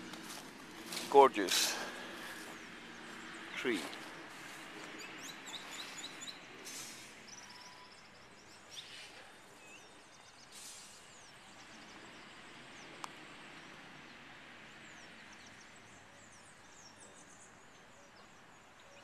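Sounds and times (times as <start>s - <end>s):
outdoor background noise: 0.0s - 19.0s
songbirds chirping: 0.0s - 19.0s.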